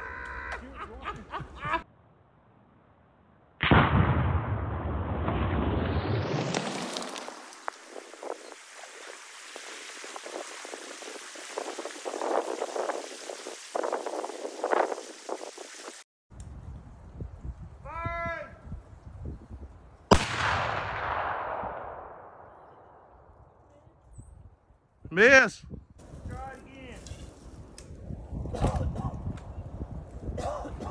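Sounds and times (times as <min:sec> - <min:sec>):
rifle shot echoing: 0:03.6 - 0:06.0, 0:20.1 - 0:23.1
debris and water splashing down: 0:05.7 - 0:16.0.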